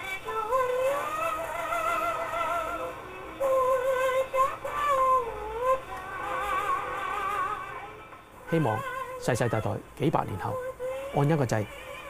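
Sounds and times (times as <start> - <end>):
person singing with vibrato: 0.0 - 12.0.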